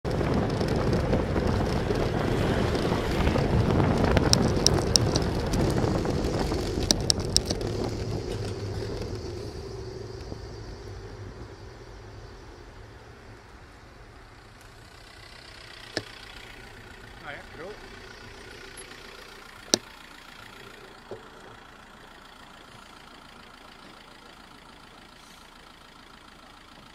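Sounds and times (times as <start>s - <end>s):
wind noise on microphone: 0.0s - 14.0s
road noise: 0.0s - 26.9s
sharp clicks: 4.1s - 9.4s.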